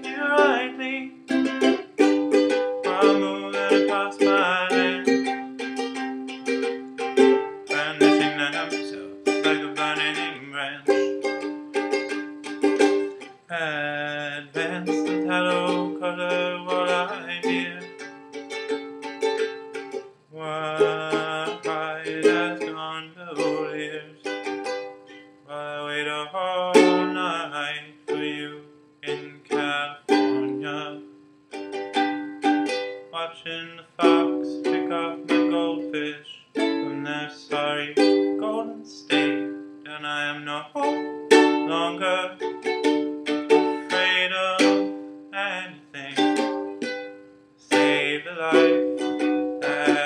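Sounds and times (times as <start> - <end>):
ukulele strumming: 0.0 - 50.0.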